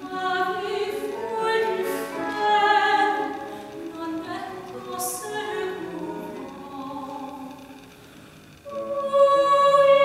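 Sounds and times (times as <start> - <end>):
soprano singing: 0.0 - 8.0, 8.6 - 10.0.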